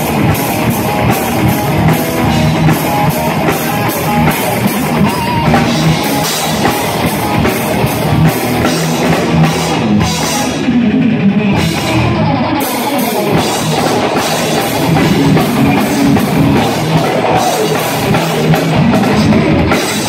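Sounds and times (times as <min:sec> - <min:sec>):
distorted electric guitars: 0:00.0 - 0:20.0
pounding drum kit: 0:00.0 - 0:20.0.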